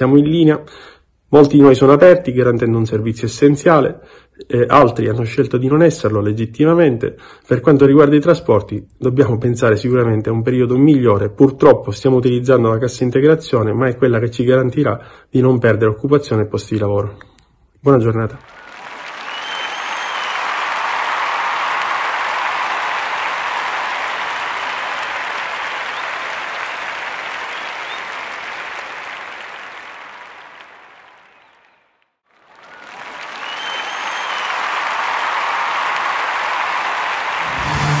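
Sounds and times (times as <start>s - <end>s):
crowd applauding: 18.4s - 38.0s
short whistle: 18.5s - 20.6s, 32.6s - 34.7s.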